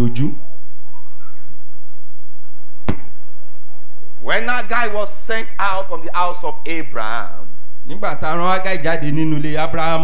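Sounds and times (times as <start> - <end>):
sharp knock: 2.8 - 3.2.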